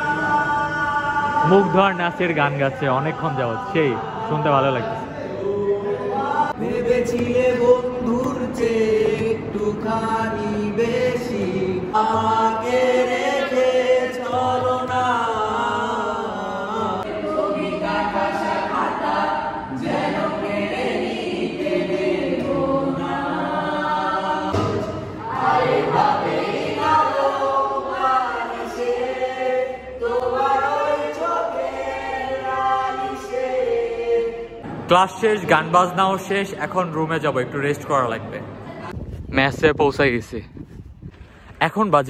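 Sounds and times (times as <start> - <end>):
young men singing unaccompanied: 0.0 - 34.6.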